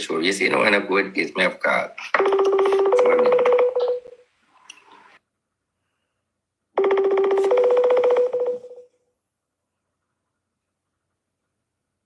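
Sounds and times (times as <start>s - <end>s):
buzzy two-note phone ring: 2.2s - 4.1s, 6.8s - 8.9s.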